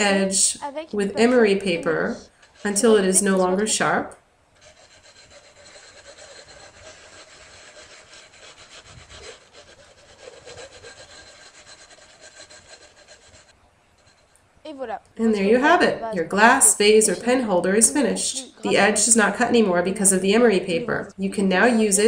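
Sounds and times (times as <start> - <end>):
sandpaper rubbing glass edge: 4.6 - 14.4.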